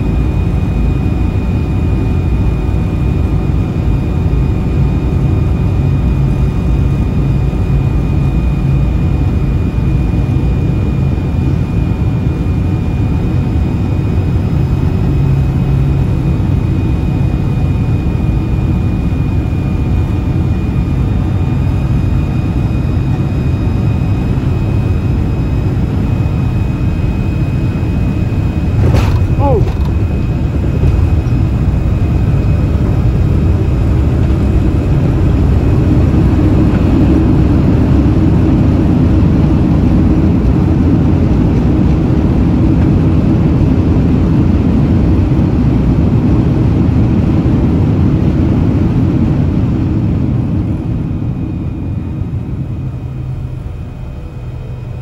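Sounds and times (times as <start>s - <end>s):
jet engine cabin roar: 0.0s - 55.0s
landing gear thump: 28.7s - 30.2s, 30.8s - 31.4s.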